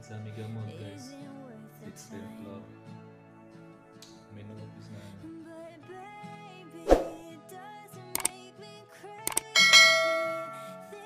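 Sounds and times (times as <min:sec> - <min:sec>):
background music: 0:00.0 - 0:11.0
short clicks: 0:08.2 - 0:08.4, 0:09.3 - 0:09.6
bright bell-like ding: 0:09.6 - 0:11.0.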